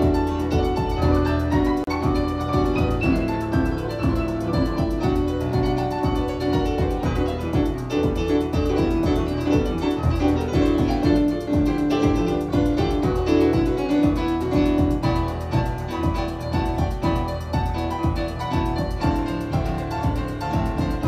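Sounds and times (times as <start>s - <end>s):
electric piano keyboard: 0.0s - 21.0s
grand piano: 0.0s - 21.0s
pulsing bass line: 0.0s - 21.0s.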